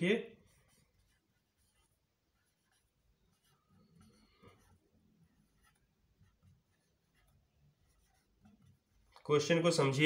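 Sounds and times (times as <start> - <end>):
marker writing on whiteboard: 0.0 - 9.4.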